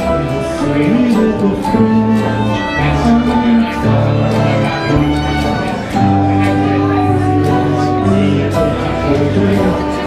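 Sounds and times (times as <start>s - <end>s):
acoustic country band playing: 0.0s - 10.0s
fiddle: 0.0s - 10.0s.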